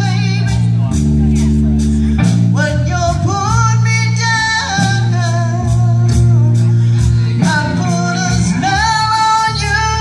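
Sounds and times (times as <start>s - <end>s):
woman singing: 0.0s - 0.9s, 2.5s - 10.0s
drums: 0.0s - 10.0s
electric bass: 0.0s - 10.0s.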